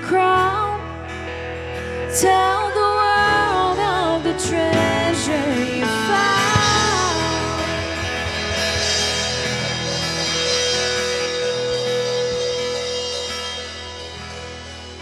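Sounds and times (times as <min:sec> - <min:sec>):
worship band playing: 0:00.0 - 0:15.0.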